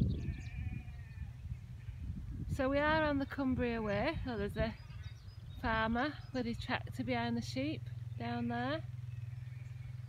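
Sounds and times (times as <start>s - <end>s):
distant sheep bleating: 0.0s - 2.3s, 3.8s - 7.0s, 8.3s - 10.0s
wind rumble on microphone: 0.0s - 10.0s.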